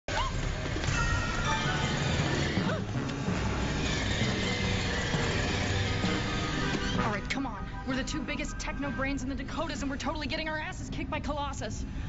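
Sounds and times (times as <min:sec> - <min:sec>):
tense orchestral score: 0:00.8 - 0:10.4.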